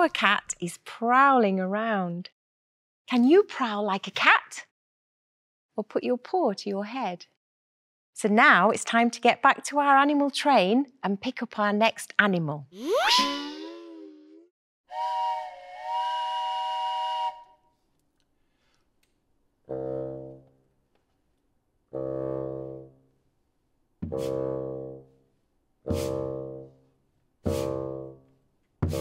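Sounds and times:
train whistle chord: 14.9s - 17.6s
bassoon playing low notes: 19.7s - 20.4s, 21.9s - 22.9s, 24.0s - 25.0s.

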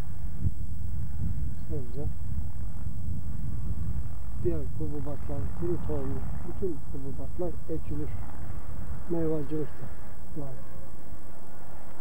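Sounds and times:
wind buffeting microphone: 0.0s - 10.0s
faint high whine: 0.0s - 12.0s.

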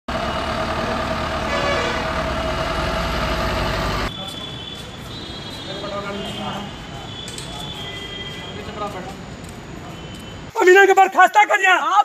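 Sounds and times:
vehicle engine driving past: 0.1s - 4.2s.

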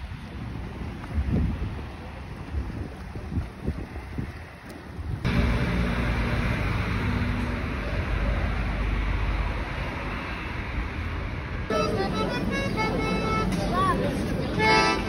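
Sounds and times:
choppy water: 0.0s - 6.8s
wind gusting on microphone: 0.0s - 11.8s
street background rumble and hiss: 0.0s - 15.0s.

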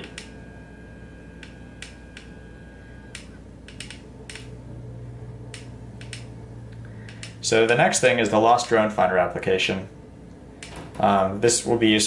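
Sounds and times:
faint high whine: 0.0s - 12.0s
low steady hum: 0.0s - 12.0s.

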